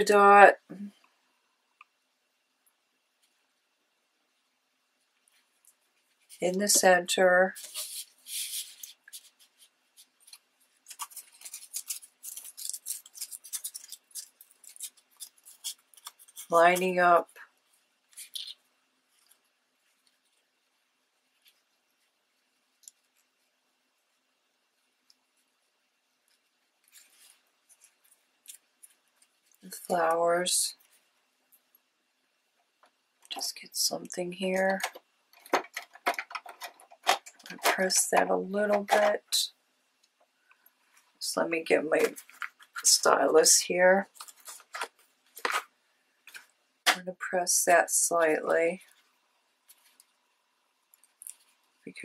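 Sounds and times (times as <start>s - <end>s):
crinkled paper crackling: 5.2s - 30.1s, 34.3s - 39.4s, 40.8s - 43.3s, 44.0s - 46.6s, 48.8s - 52.0s
paper crackling and rustling: 7.5s - 17.0s, 34.6s - 39.2s, 42.0s - 43.0s, 44.0s - 46.5s.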